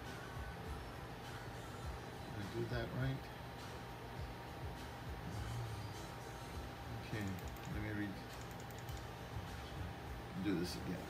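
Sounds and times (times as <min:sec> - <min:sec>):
low steady hum: 0:00.0 - 0:11.0
computer keys clicking: 0:07.2 - 0:09.1.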